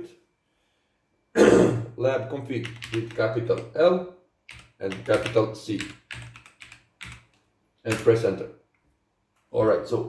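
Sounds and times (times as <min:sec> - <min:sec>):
man coughing: 0:01.4 - 0:02.0.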